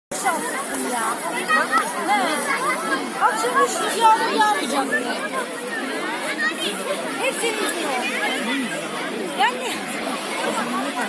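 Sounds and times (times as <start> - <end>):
people talking at once: 0.1 - 11.0.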